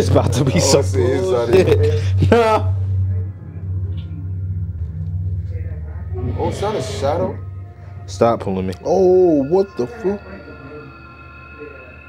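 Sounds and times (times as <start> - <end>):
low droning music rumble: 0.0 - 12.0.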